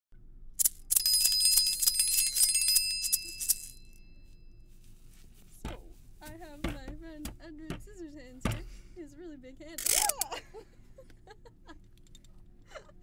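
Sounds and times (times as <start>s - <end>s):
small bell ringing rapidly: 0.6s - 4.4s.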